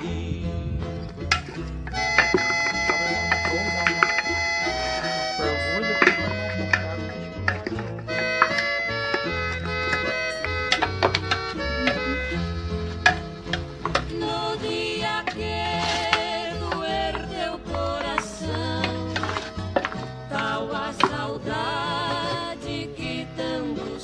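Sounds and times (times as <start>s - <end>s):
person singing: 0.0s - 1.0s, 14.0s - 24.0s
instrumental song with bass line: 0.0s - 24.0s.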